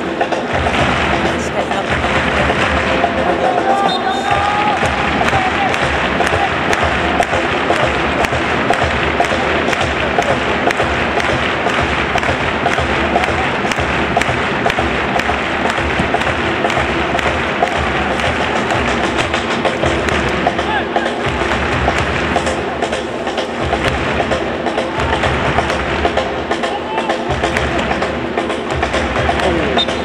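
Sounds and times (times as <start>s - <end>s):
crowd clapping in rhythm: 0.0s - 30.0s
drums beating: 0.0s - 30.0s
murmur of voices: 0.0s - 30.0s.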